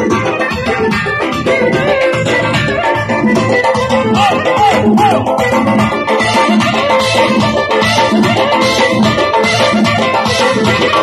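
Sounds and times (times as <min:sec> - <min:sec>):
frame drum rhythm: 0:00.0 - 0:11.0
keyboard melody: 0:00.0 - 0:11.0
live dance music: 0:00.0 - 0:11.0.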